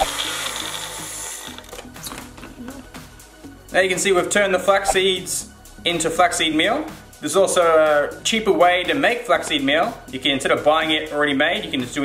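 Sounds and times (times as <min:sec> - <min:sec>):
blender whirring: 0:00.0 - 0:01.8
background music: 0:00.0 - 0:12.0.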